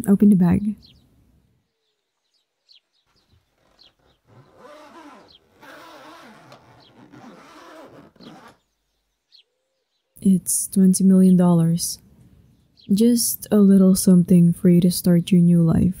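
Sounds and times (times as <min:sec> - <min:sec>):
birds chirping faintly: 0:00.0 - 0:15.9.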